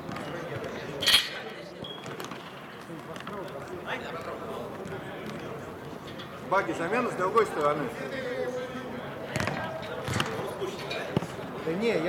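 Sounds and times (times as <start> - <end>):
football kicked with thuds: 9.3 - 10.3.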